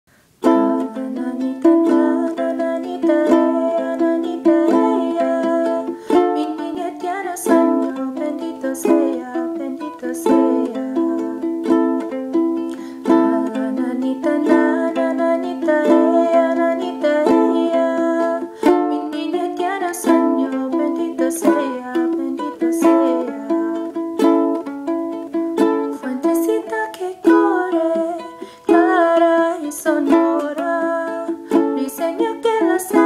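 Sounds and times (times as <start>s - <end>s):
ukulele strumming chords: 0.3s - 33.0s.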